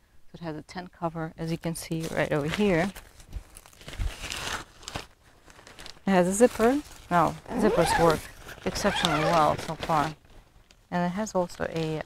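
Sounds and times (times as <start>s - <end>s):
tent fabric rustling: 2.0s - 10.6s.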